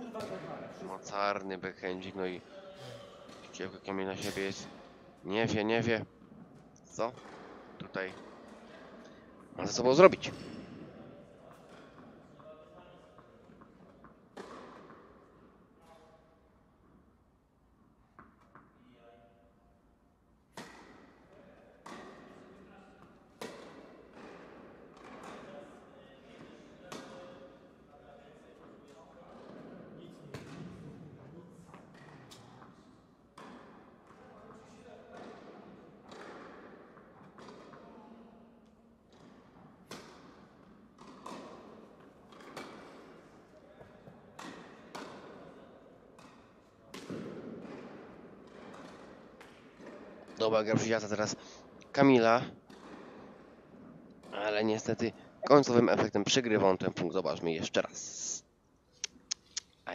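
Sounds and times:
tennis ball bouncing on court: 0.1 - 0.5, 13.2 - 15.1, 20.5 - 21.1, 21.8 - 22.4, 23.0 - 25.4, 39.1 - 45.4, 46.2 - 50.4, 52.6 - 53.6
tennis ball hit by rackets: 14.0 - 15.0, 20.5 - 21.1, 41.0 - 41.7, 42.3 - 43.1, 44.4 - 45.2.

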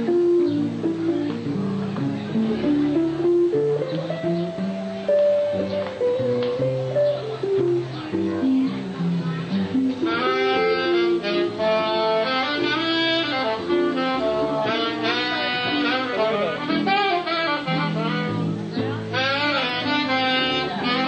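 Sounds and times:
jazz combo playing: 0.0 - 21.0
saxophone melody: 9.9 - 21.0.

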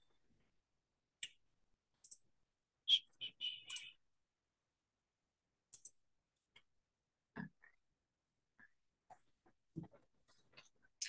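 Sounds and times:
computer clicks: 3.6 - 4.0, 5.7 - 6.0.

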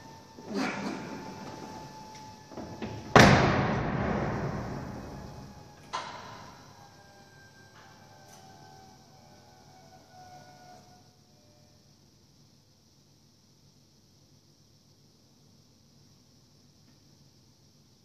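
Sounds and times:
car door slam: 2.8 - 5.2.

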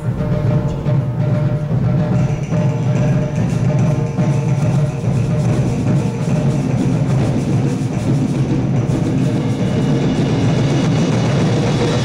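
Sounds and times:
concert band playing: 0.0 - 12.0
drums and percussion: 0.0 - 12.0.

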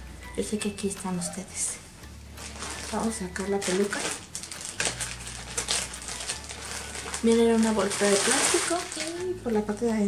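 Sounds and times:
plastic bag crinkling: 2.4 - 10.0.

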